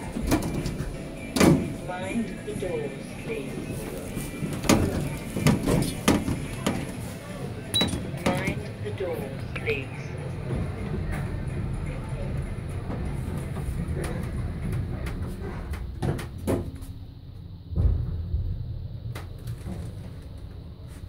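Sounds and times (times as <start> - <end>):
lift doors closing: 0.0 - 8.7
heavy thump: 17.7 - 18.8.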